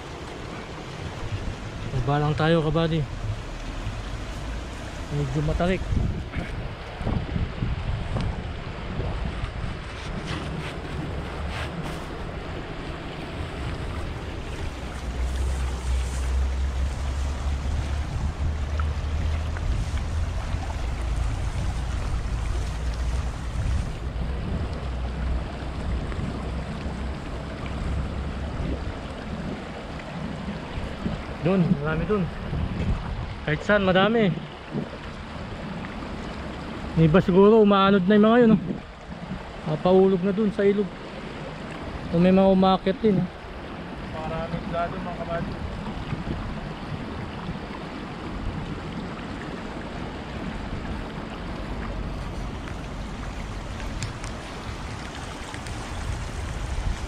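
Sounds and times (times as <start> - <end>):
water rushing over rocks: 0.0 - 57.0
wind buffeting microphone: 0.0 - 57.0
splashing through water: 8.0 - 33.4, 42.8 - 57.0.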